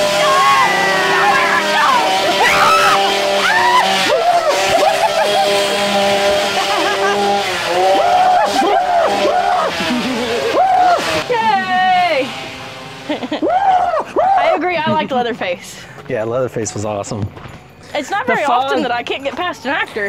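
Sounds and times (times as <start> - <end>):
people screaming and shouting: 0.0 - 15.0
chainsaw engine revving: 0.0 - 15.2.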